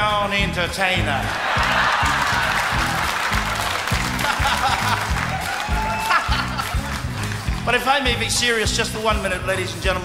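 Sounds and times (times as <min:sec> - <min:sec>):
live band bass beat: 0:00.0 - 0:10.0
audience laughter: 0:01.2 - 0:07.3
scattered applause: 0:01.2 - 0:08.2.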